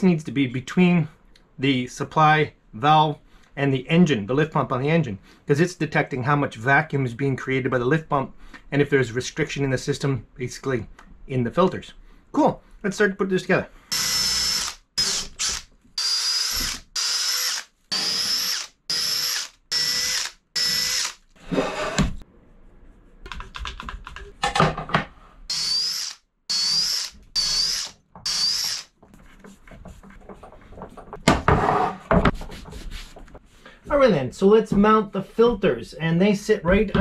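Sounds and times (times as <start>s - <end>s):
cordless drill whining: 13.9s - 21.3s, 25.5s - 28.9s.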